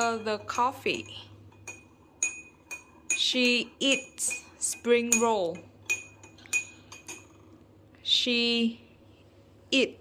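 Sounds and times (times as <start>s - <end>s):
spoon clinking against glass: 0.0s - 7.4s
teaspoon stirring in a glass: 0.0s - 7.6s.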